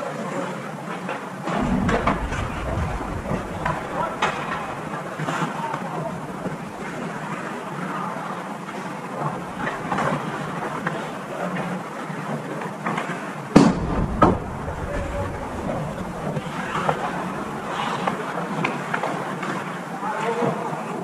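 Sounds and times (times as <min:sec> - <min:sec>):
low rumble: 0:01.4 - 0:07.6, 0:09.2 - 0:10.9, 0:13.7 - 0:18.3
sharp bangs: 0:01.5 - 0:07.3.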